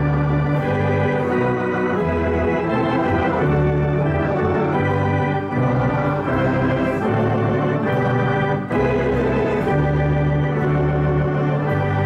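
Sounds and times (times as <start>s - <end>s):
electronic organ chords: 0.0s - 12.0s.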